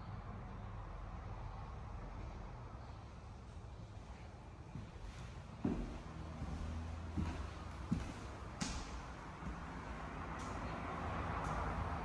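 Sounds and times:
footsteps on hardwood floor: 4.7 - 10.8.

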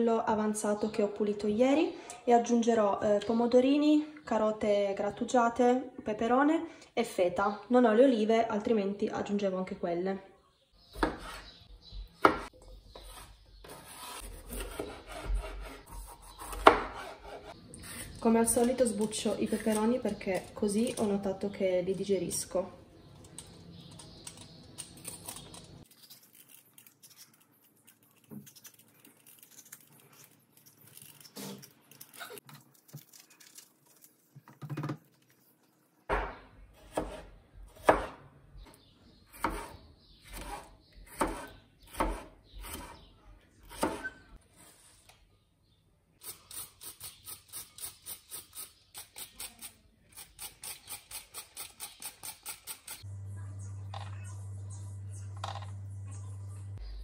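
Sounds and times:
vegetable peeler scraping pepper: 13.0 - 21.0, 46.2 - 53.0
knife chopping on cutting board: 14.5 - 17.5, 36.1 - 37.2, 37.8 - 38.2, 40.4 - 43.0.

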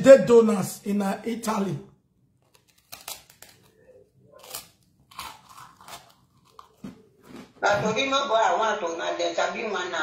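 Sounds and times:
person biting and chewing bread: 2.2 - 7.6.

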